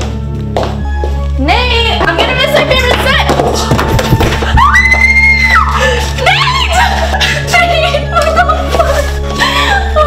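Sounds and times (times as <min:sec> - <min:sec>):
woman screaming: 0:04.6 - 0:06.9.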